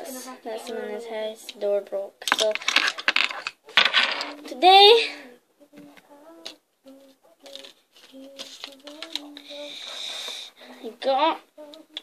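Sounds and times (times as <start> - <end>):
girl humming a low note: 5.2 - 7.2.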